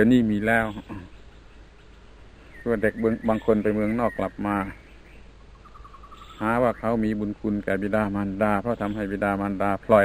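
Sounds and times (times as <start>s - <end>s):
man talking: 0.0s - 1.1s, 2.6s - 4.8s, 6.4s - 10.0s
low recording hum: 0.0s - 10.0s
high insect chirps: 0.3s - 7.2s.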